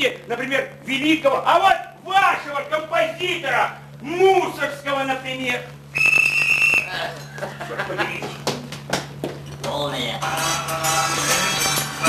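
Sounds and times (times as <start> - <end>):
voices in room: 0.0 - 12.0
shrill whistle blast: 5.9 - 7.1.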